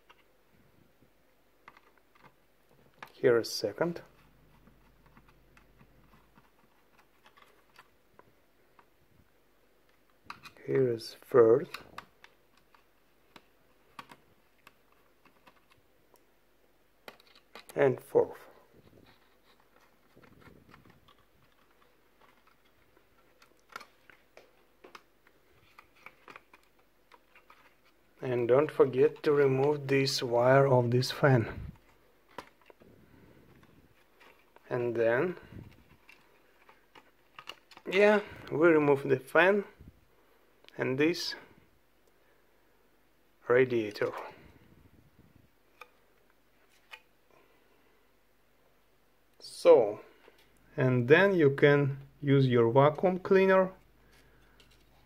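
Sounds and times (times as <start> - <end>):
handling rustle: 4.0 - 9.2, 17.0 - 38.6.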